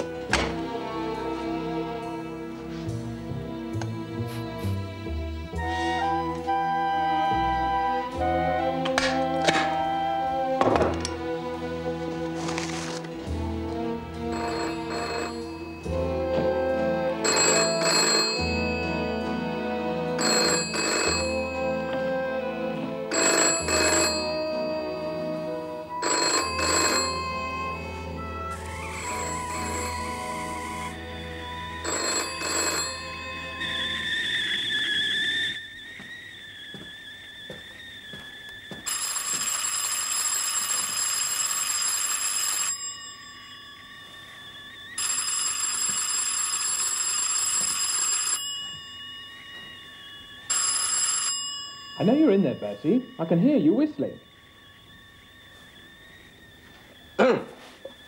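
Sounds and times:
telephone bell ringing: 14.2 - 35.6, 38.8 - 55.0
man whistling a tune: 33.5 - 38.9, 52.9 - 58.0.

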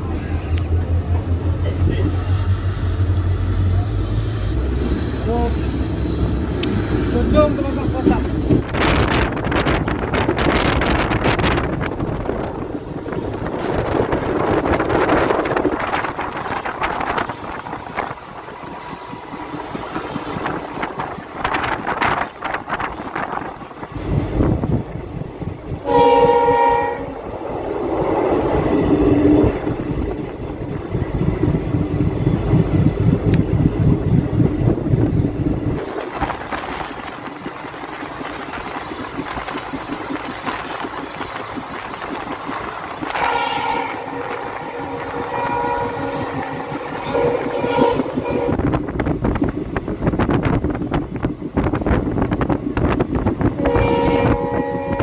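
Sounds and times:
train rattling over rails: 0.0 - 55.0
train horn: 25.8 - 27.2, 43.0 - 48.6, 53.6 - 55.0.

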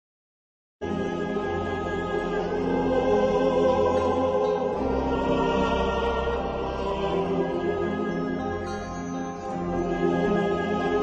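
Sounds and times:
choir singing sustained chords: 0.8 - 11.0.

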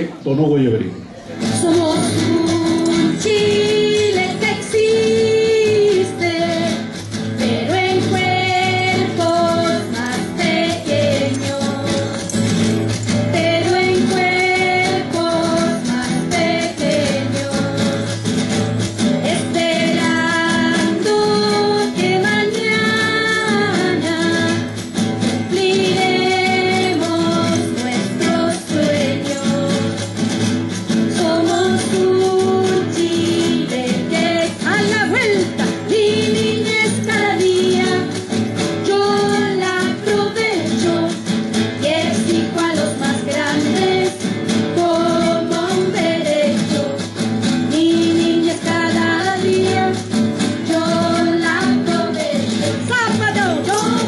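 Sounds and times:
folk ensemble singing with instruments: 1.2 - 54.0.

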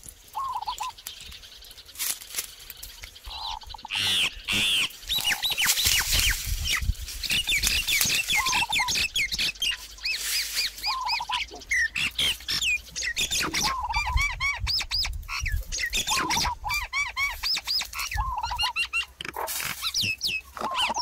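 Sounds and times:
birds calling and singing: 0.0 - 21.0
low warbling bird phrase: 3.2 - 14.7, 19.8 - 21.0.

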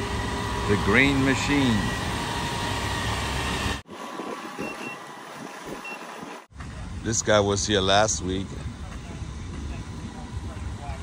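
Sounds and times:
garbage truck engine running: 0.0 - 6.9
outdoor noise: 0.0 - 11.0.

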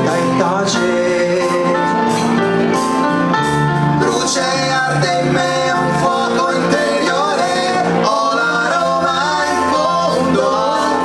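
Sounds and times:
two men singing together: 0.0 - 2.2, 4.0 - 11.0
instrumental accompaniment: 0.0 - 11.0.

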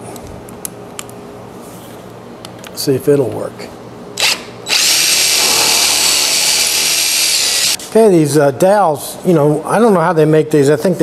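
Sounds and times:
cordless drill boring into wood: 4.2 - 7.8.

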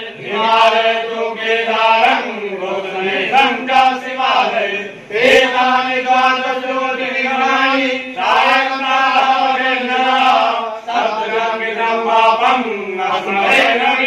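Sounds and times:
men chanting in unison: 0.0 - 14.0.

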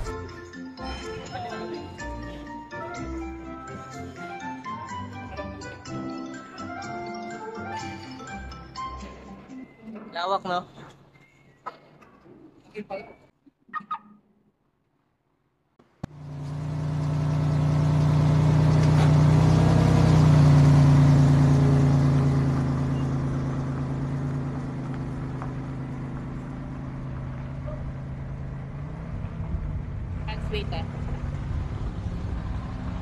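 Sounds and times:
car engine driving and idling: 0.0 - 10.3, 15.8 - 33.0.

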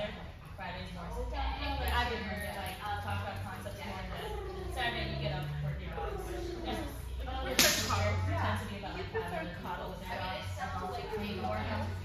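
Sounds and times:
faint voices: 0.0 - 12.0
sharp crack: 7.5 - 8.0.

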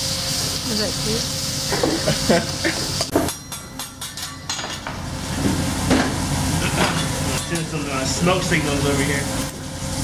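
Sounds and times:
sizzling on a hot griddle: 0.0 - 10.0.

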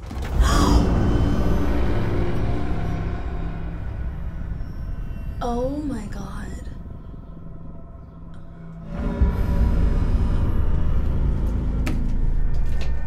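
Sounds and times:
horror score drone and rumble: 0.0 - 13.0.

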